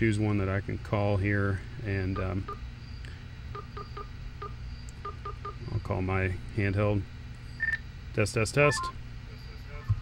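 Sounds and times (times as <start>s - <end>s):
phone keypad beeps: 7.6s - 7.8s, 8.7s - 9.0s.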